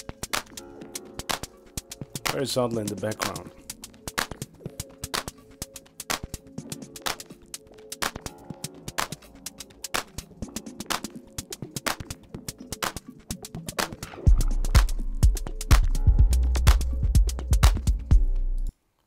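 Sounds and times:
percussive clicks and hi-hats: 0.0 - 18.8
deep kick and bass: 14.3 - 18.7.

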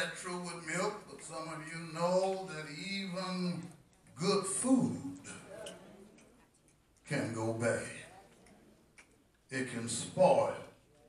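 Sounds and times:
man preaching with echo: 0.0 - 5.5, 7.1 - 8.1, 9.5 - 10.7.

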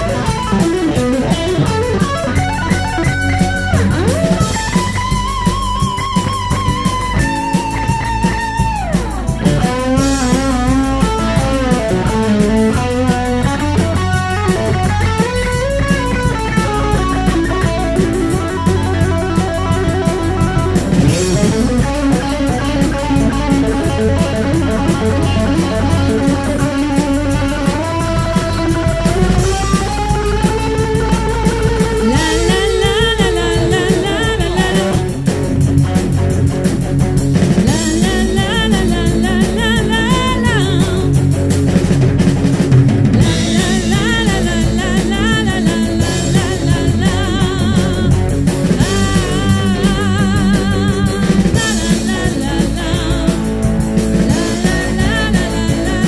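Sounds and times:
drum kit: 0.0 - 56.0
electric guitar: 0.0 - 56.0
woman singing: 32.0 - 35.2, 37.6 - 41.2, 43.2 - 56.0.

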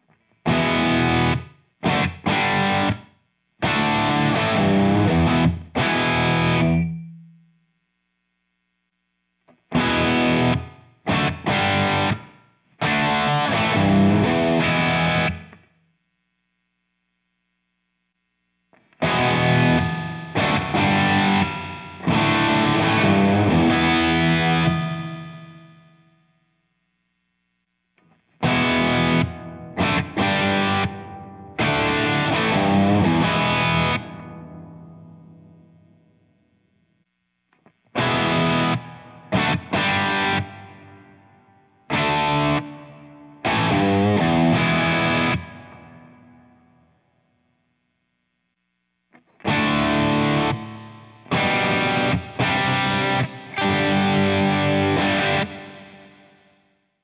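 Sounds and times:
distorted electric guitar with reverb: 0.0 - 57.0.

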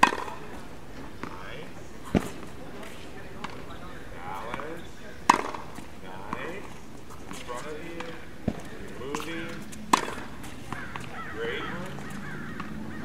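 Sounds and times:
tennis racket hitting ball: 0.0 - 3.6, 4.4 - 12.9.

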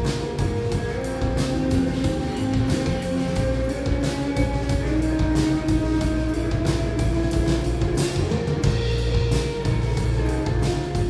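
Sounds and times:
live electronic pop band playing: 0.0 - 11.0.

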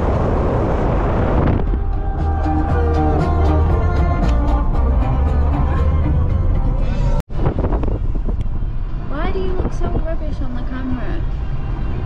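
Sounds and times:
car road rumble: 0.0 - 12.0
voice singing with gliding pitch: 1.7 - 7.1
music playing: 1.7 - 7.2.

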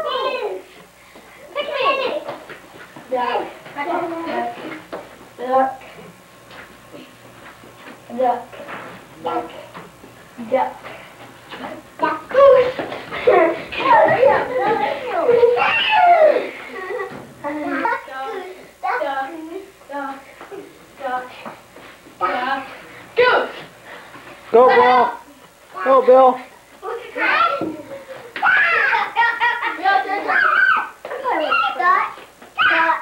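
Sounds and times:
children squealing and crying: 15.3 - 16.8, 28.4 - 29.3, 30.1 - 31.8, 32.6 - 33.0.

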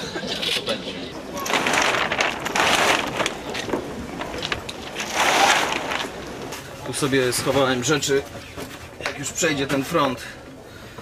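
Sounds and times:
fabric bag rustling: 1.4 - 6.2.

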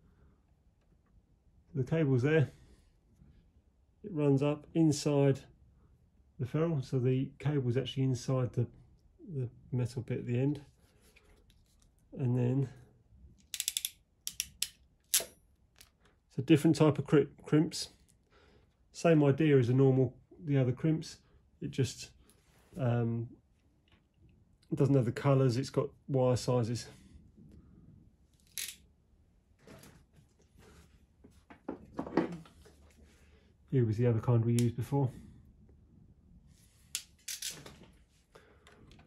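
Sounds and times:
soft rustles and scrapes of wiring: 10.6 - 12.2, 29.4 - 33.3
ratchet crimping tool clicking: 13.5 - 15.3.

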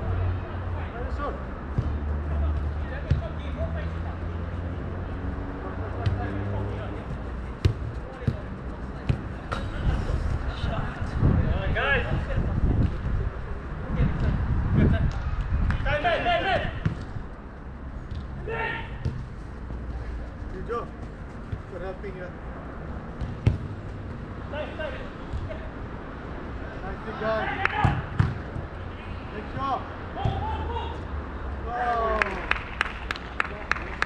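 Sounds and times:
soccer ball thudding off boots: 7.1 - 9.7, 23.1 - 24.3, 27.8 - 28.7
player shouting: 18.4 - 19.0.

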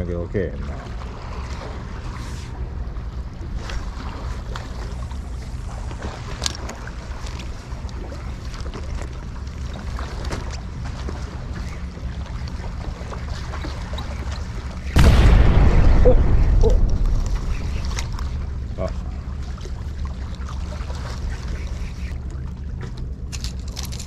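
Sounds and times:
wind rumble on microphone: 10.5 - 24.0.

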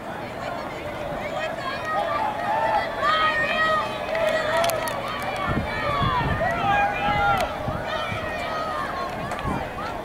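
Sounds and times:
spectators yelling and cheering: 0.0 - 10.0.

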